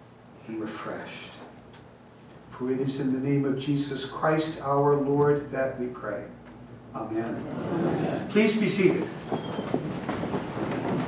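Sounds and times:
rustling and shuffling: 8.5 - 11.0.

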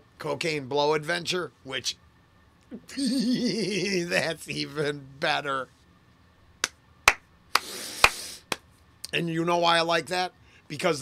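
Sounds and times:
finger snaps: 6.6 - 9.2
breathy hiss: 7.6 - 8.6.

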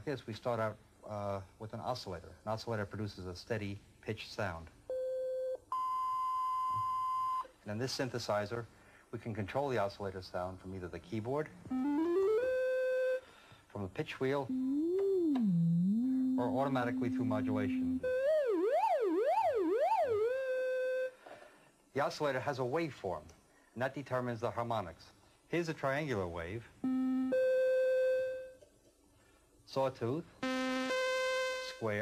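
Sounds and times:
synthesizer notes: 11.7 - 13.2, 14.5 - 21.1.

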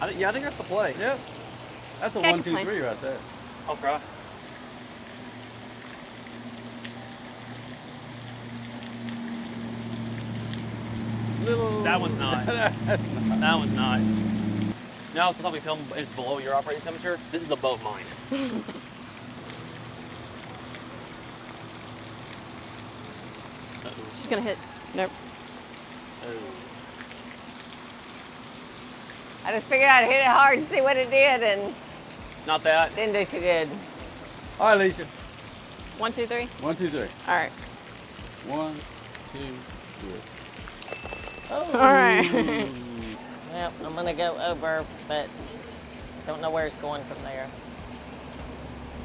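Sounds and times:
running water hiss: 0.0 - 49.0
low motor hum: 4.3 - 14.8
person saying oh: 11.4 - 12.5, 41.5 - 43.2.

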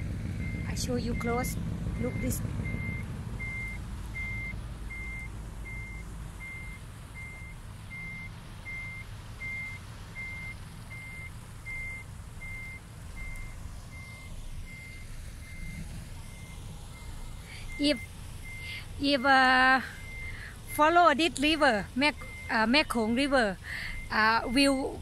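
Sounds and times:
low engine rumble: 0.0 - 25.0
vehicle reversing alarm beeping: 0.0 - 25.0.

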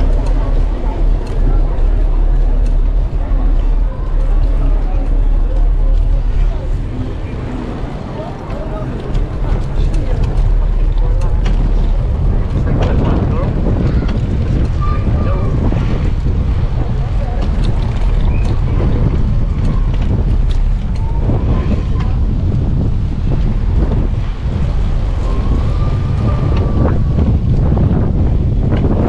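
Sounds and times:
faint voices: 0.0 - 29.0
wind buffeting microphone: 0.0 - 29.0.

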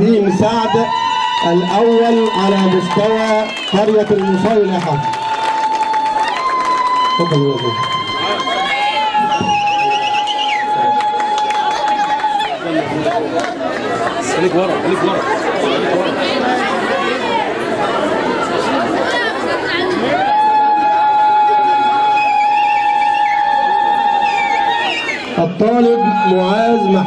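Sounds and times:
women ululating: 0.0 - 12.6, 20.0 - 27.0
crowd chattering and cheering: 0.0 - 27.0.

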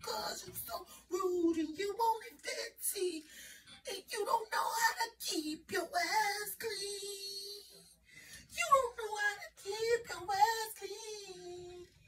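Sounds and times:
woman singing with vibrato: 0.0 - 12.0.

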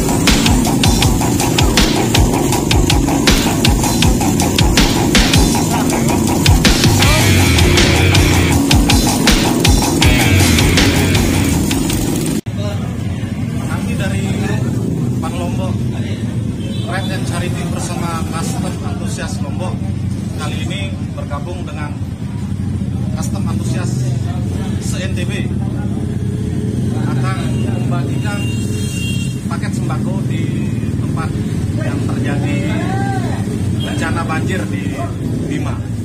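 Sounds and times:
engine humming: 0.0 - 12.4
music: 0.0 - 12.4
people's voices: 5.6 - 8.6.

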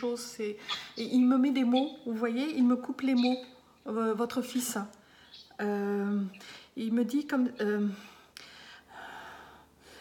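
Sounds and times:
woman breathing softly: 7.9 - 10.0.

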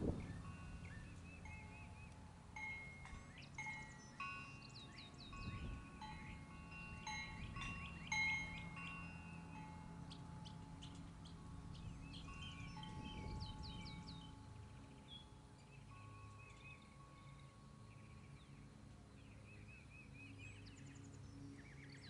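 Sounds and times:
wind chimes ringing: 0.0 - 18.8
birds chirping: 0.0 - 22.0.

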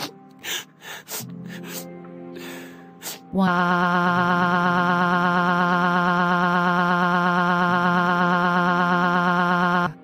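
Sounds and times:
synthesized voice wailing: 3.4 - 10.0.

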